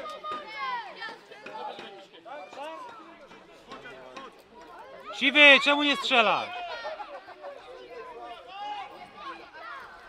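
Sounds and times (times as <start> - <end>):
indistinct voices talking: 5.1 - 6.6.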